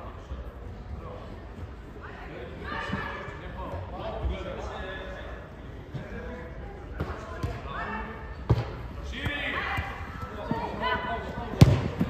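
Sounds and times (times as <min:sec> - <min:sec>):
football kicked with sharp thuds: 0:11.6 - 0:12.0.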